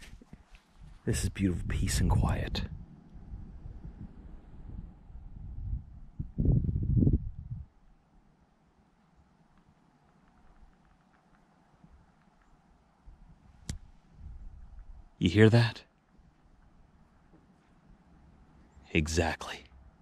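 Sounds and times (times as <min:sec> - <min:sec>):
low rumble on microphone: 0:00.0 - 0:07.7, 0:13.1 - 0:15.1
faint ticks: 0:09.1 - 0:14.0.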